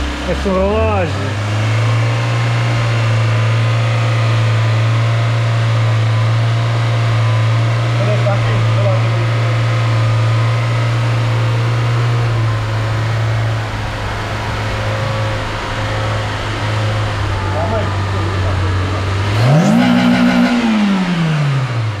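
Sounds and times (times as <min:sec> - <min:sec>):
car engine idling and revving: 0:00.0 - 0:22.0.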